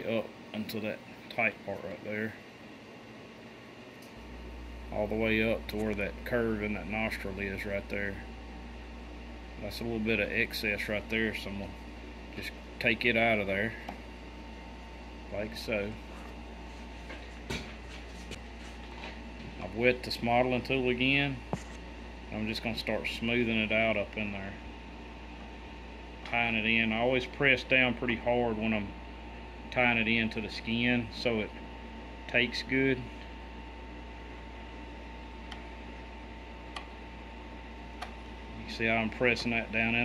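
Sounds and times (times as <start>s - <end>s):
low room hum: 0.0s - 40.0s.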